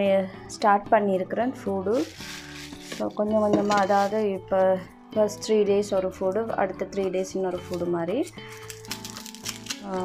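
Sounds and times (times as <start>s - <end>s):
woman's voice: 0.0s - 2.2s, 3.0s - 8.4s
background music held notes: 0.0s - 10.0s
onion skin crinkling: 1.9s - 3.1s, 7.6s - 10.0s.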